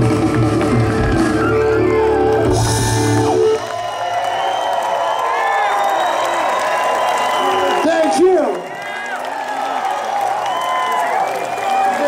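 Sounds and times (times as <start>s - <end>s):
rock band playing: 0.0s - 4.3s
crowd cheering and whooping: 0.0s - 12.0s.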